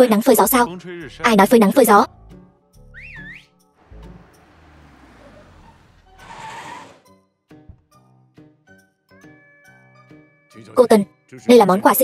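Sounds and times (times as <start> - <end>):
faint background music: 0.0 - 5.3, 9.7 - 12.0
sliding whistle: 3.0 - 3.5, 5.1 - 7.1.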